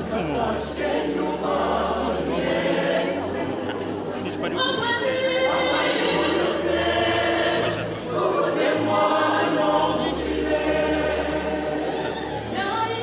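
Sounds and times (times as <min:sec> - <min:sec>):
choir singing gospel: 0:00.0 - 0:13.0.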